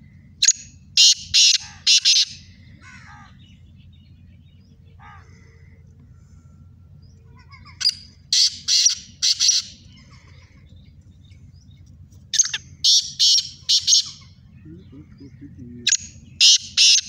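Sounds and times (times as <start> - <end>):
francolin harsh rasping calls: 0.4 - 3.6, 7.6 - 10.6, 12.3 - 17.0.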